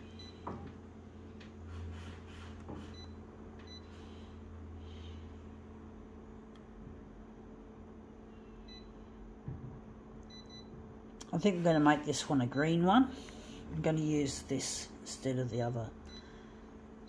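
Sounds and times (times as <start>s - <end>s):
low machine hum: 0.0s - 17.0s
touchscreen key-press beeps: 10.3s - 10.7s.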